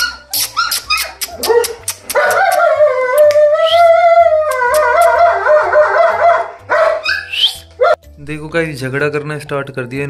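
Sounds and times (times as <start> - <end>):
puppies whining and yelping: 0.0 - 8.0
background music: 0.0 - 10.0.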